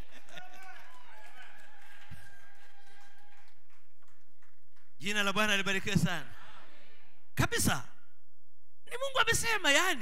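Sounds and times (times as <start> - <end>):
voices in a hall: 5.9 - 9.3.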